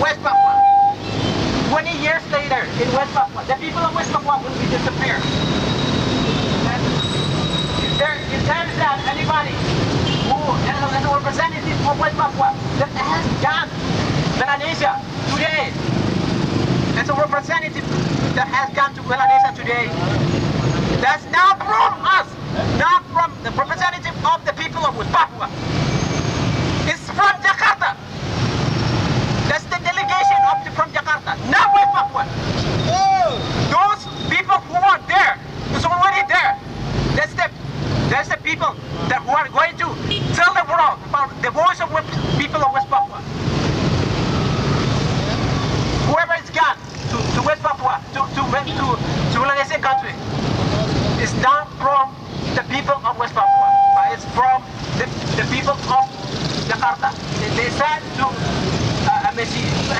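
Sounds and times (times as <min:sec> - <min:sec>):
man speaking through megaphone: 0:00.0 - 0:01.0, 0:01.6 - 0:05.4, 0:06.6 - 0:07.0, 0:07.8 - 0:15.8, 0:16.9 - 0:20.3, 0:20.9 - 0:25.6, 0:26.8 - 0:28.1, 0:29.4 - 0:32.4, 0:33.2 - 0:43.4, 0:45.3 - 0:59.9
street traffic: 0:00.0 - 0:59.9.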